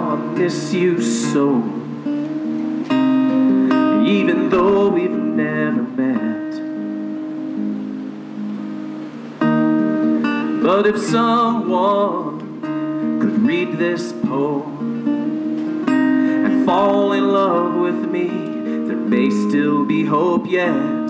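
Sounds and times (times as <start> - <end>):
man singing: 0.0 - 2.1, 3.4 - 6.8, 10.4 - 21.0
acoustic guitar strumming chords: 0.0 - 21.0.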